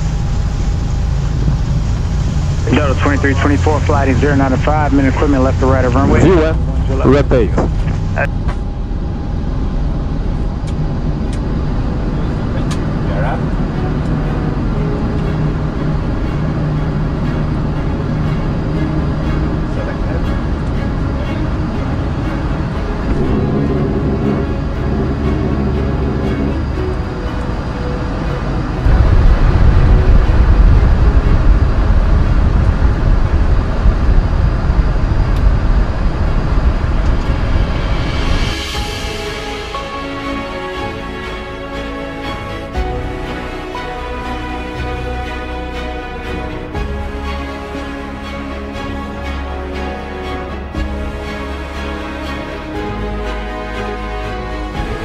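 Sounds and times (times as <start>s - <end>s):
deep rumble: 0.0s - 55.0s
jet engines in cockpit: 0.0s - 55.0s.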